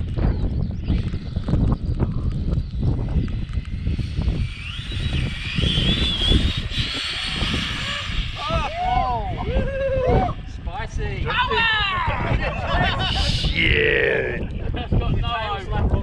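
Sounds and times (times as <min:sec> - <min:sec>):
high electric motor whine: 0:00.0 - 0:09.3
wind buffeting microphone: 0:00.0 - 0:16.0
person calling out: 0:13.4 - 0:14.4.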